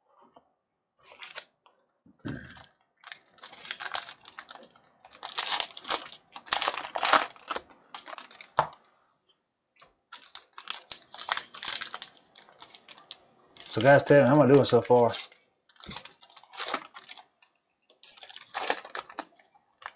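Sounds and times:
cards rustling: 0:01.1 - 0:01.5, 0:03.0 - 0:08.6, 0:10.1 - 0:17.3, 0:17.9 - 0:19.9
plastic wrapper crinkling: 0:01.1 - 0:01.5, 0:02.4 - 0:08.8, 0:10.1 - 0:19.9.

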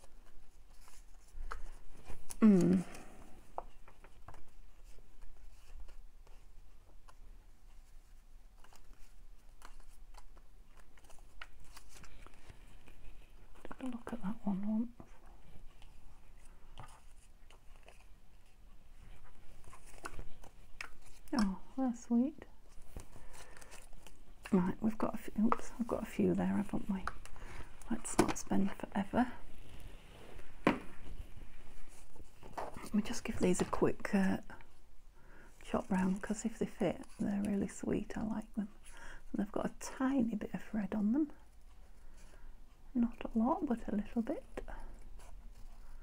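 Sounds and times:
woman murmuring: 0:02.4 - 0:03.0.

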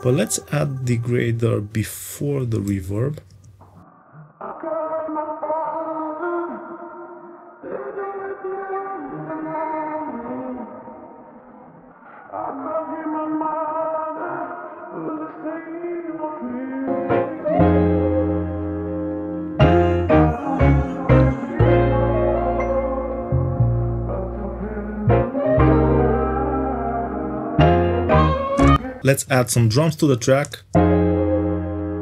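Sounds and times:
processed sung vocal with reverb: 0:00.0 - 0:19.0, 0:19.6 - 0:23.4, 0:24.0 - 0:30.4
deep bass: 0:19.6 - 0:29.0.

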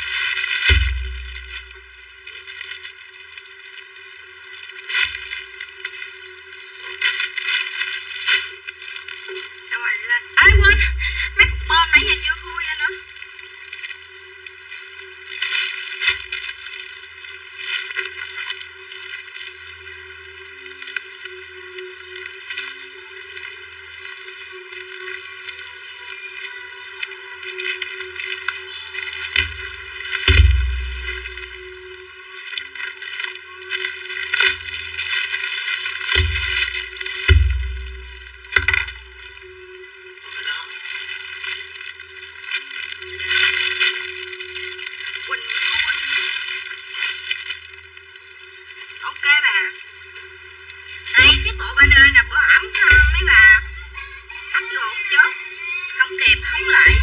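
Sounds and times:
plastic packaging crinkling: 0:00.0 - 0:57.0.

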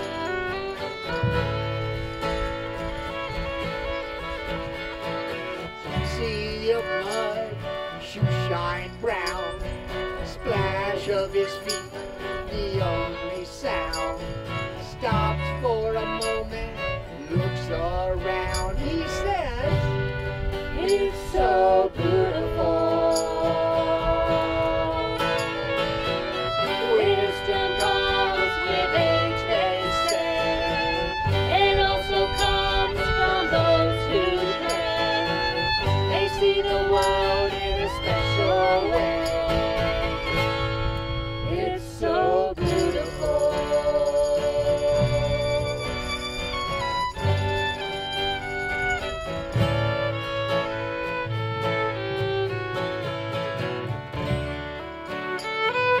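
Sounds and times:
fiddle melody with slides: 0:00.0 - 0:56.0
strummed acoustic guitar: 0:00.0 - 0:56.0
walking upright bass: 0:00.0 - 0:56.0.

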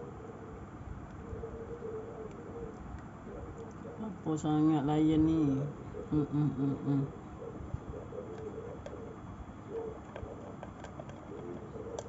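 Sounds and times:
cat crunching dry kibble: 0:10.0 - 0:12.0.

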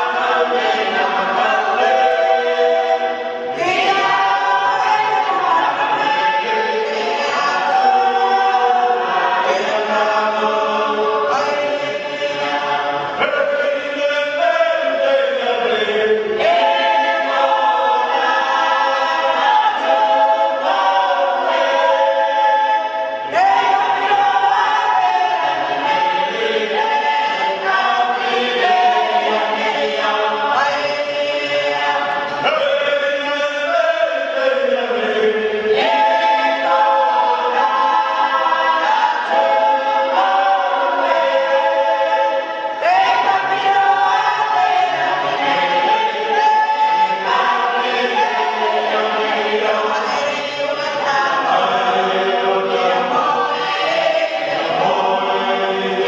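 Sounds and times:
mixed choir singing in harmony: 0:00.0 - 0:56.0.

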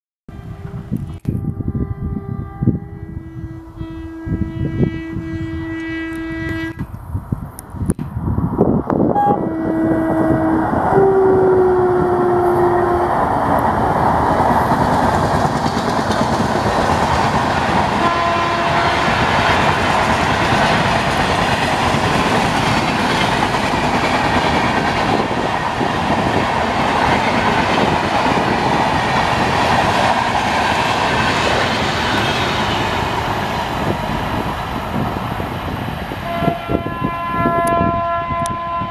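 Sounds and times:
train horn blasts: 0:00.3 - 0:06.9, 0:09.1 - 0:13.8, 0:17.9 - 0:19.8, 0:36.2 - 0:38.9
train rushing past: 0:08.1 - 0:38.9.

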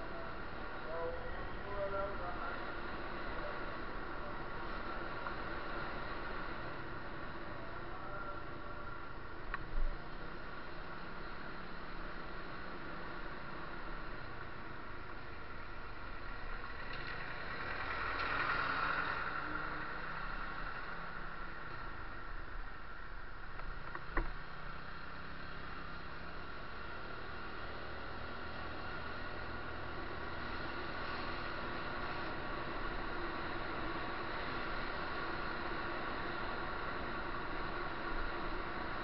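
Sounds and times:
vehicle running noise: 0:00.0 - 0:39.0.

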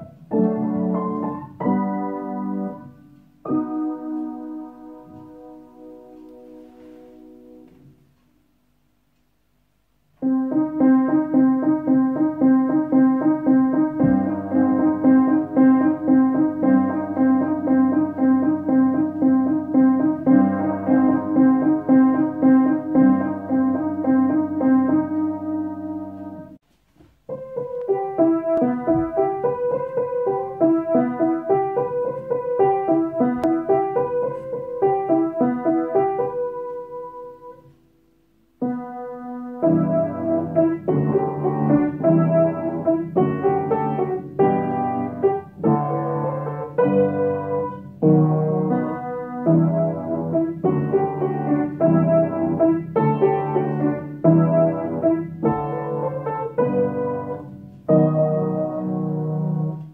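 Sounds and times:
piano playing repeated chords: 0:00.0 - 0:09.0, 0:09.9 - 0:26.6, 0:27.2 - 0:59.9.

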